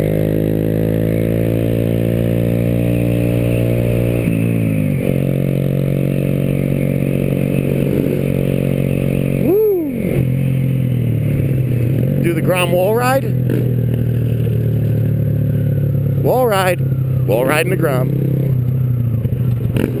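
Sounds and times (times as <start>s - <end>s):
motorcycle engine running: 0.0s - 20.0s.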